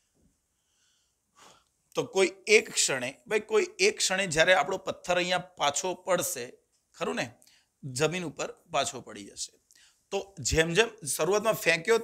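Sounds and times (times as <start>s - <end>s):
faint intake of breath: 0.6s - 1.8s
man speaking: 1.9s - 12.0s.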